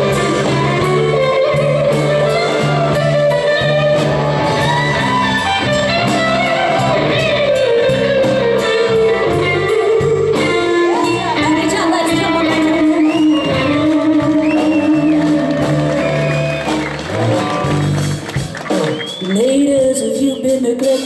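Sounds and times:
electric guitar lead with bending notes: 0.0 - 20.9
bass guitar: 0.0 - 21.0
drums keeping a steady beat: 0.0 - 21.0.

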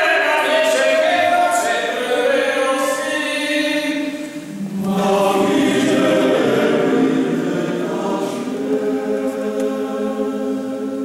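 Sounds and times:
male choir singing a cappella: 0.0 - 11.0.

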